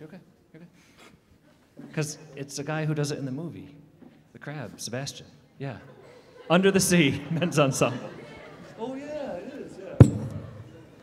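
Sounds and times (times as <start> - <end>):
microphone thump against stand: 10.0 - 10.7.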